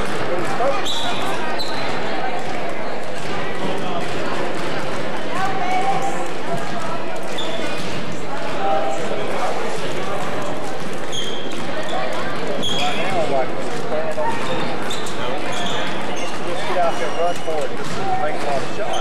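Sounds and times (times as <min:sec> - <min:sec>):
overlapping crowd voices: 0:00.0 - 0:19.0
basketball bouncing on court: 0:10.2 - 0:19.0.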